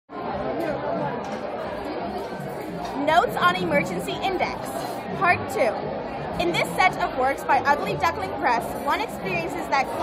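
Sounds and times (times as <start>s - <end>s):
background chatter: 0.1s - 10.0s.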